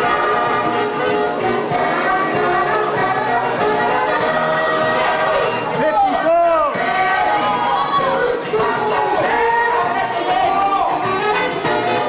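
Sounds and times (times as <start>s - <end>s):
latin dance music: 0.0s - 12.0s
loud voice call: 5.7s - 6.8s.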